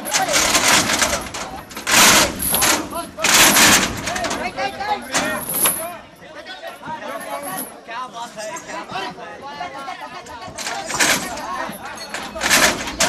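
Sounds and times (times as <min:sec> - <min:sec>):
harsh bursts of noise: 0:00.0 - 0:04.5.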